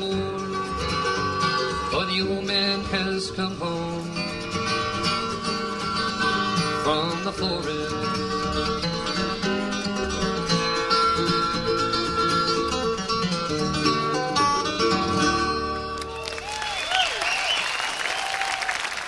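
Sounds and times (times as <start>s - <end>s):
acoustic bluegrass band playing: 0.0s - 17.0s
audience applause and cheering: 16.0s - 19.0s.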